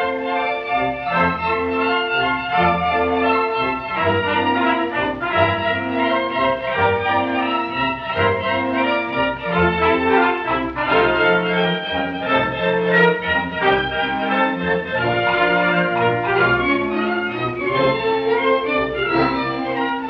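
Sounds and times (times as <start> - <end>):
small theatre orchestra playing: 0.0 - 20.0.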